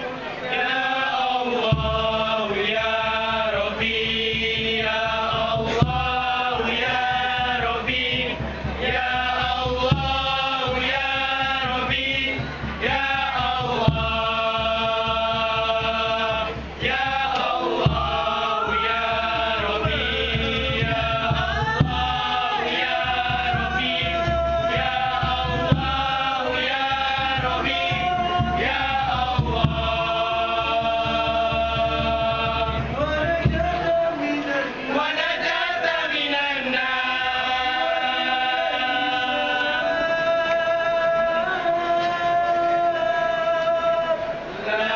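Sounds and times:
men chanting in unison: 0:00.5 - 0:44.9
hand-struck frame drums: 0:01.6 - 0:34.0.

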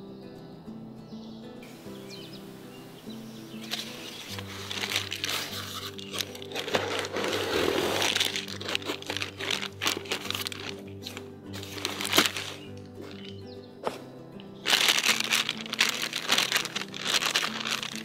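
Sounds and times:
background music: 0:00.0 - 0:18.0
plastic bag crinkling: 0:03.6 - 0:13.5, 0:14.4 - 0:18.0
cardboard box rustling: 0:03.6 - 0:14.0, 0:14.6 - 0:18.0.

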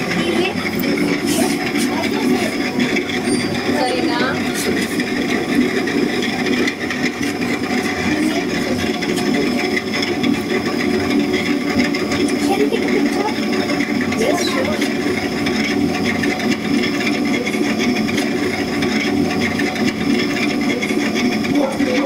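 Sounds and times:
voices talking: 0:00.0 - 0:16.1, 0:19.2 - 0:22.0
potter's wheel humming: 0:00.0 - 0:22.0.

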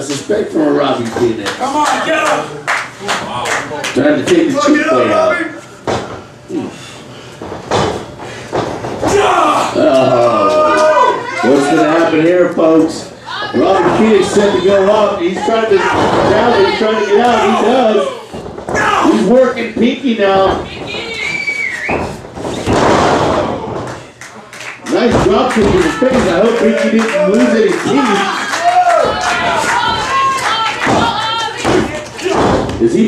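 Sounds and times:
bodies thudding on ring mat: 0:07.3 - 0:09.3
heavy thuds in wrestling ring: 0:15.8 - 0:16.8, 0:21.9 - 0:24.0, 0:30.8 - 0:32.9
crowd whistling: 0:21.0 - 0:22.8.

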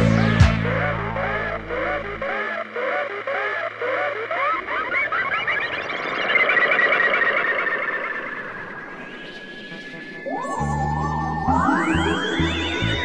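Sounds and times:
synth bass line: 0:00.0 - 0:04.2, 0:09.0 - 0:13.0
electronic dance music: 0:00.0 - 0:06.1, 0:09.3 - 0:13.0.

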